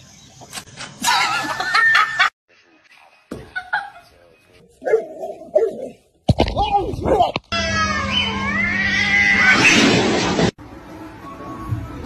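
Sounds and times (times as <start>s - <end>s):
cat caterwauling: 7.5s - 9.8s.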